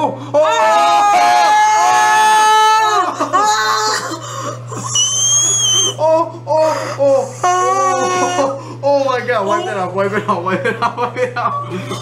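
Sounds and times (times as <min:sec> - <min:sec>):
person screaming in disgust: 0:00.0 - 0:04.2, 0:04.9 - 0:09.3.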